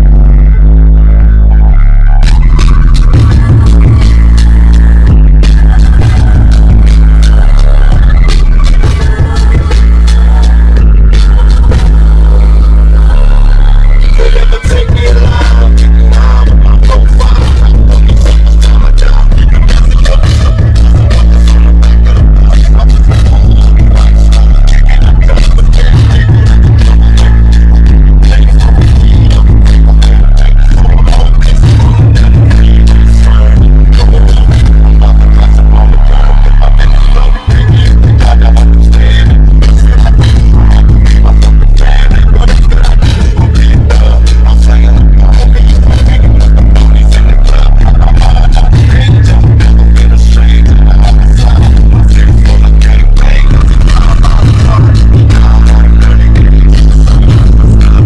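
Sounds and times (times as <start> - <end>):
hip-hop beat with heavy bass: 0.0 - 58.0
rapping: 0.0 - 58.0.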